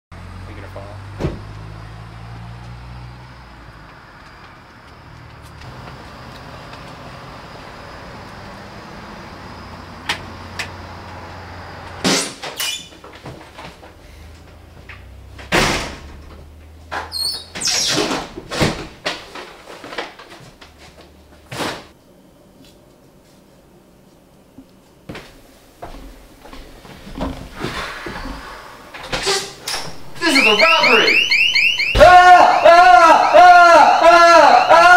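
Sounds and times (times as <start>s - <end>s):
door thumps and bangs: 1.2s - 1.5s, 15.4s - 16.3s, 16.9s - 19.4s.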